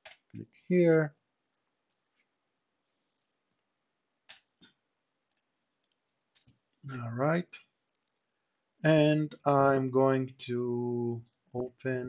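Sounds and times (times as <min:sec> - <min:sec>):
computer mouse clicking: 0:04.3 - 0:06.6, 0:07.9 - 0:08.2.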